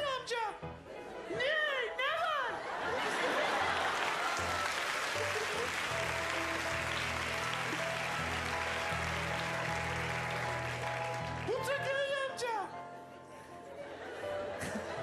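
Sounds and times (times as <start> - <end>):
audience laughing: 2.5 - 6.6, 13.8 - 15.0
audience applauding: 2.9 - 11.8
background music with bass notes: 5.2 - 12.0.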